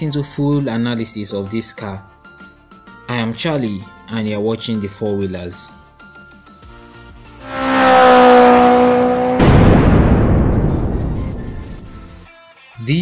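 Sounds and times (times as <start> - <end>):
rising whoosh with tone: 7.3 - 11.9
deep booming hit: 9.2 - 12.2.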